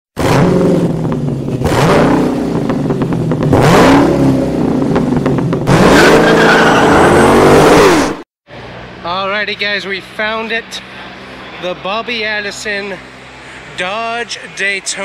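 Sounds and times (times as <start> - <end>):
car engine revving hard: 0.2 - 8.2.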